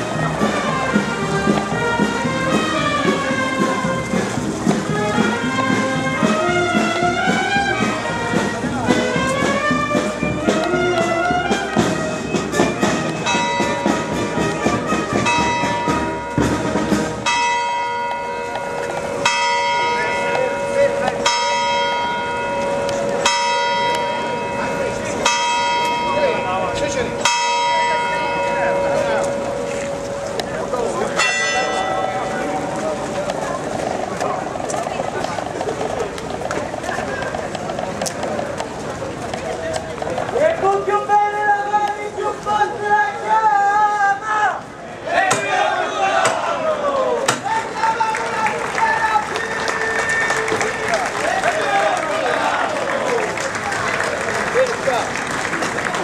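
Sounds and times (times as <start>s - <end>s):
melody: 0.0s - 34.2s
church bell tolling: 13.2s - 33.8s.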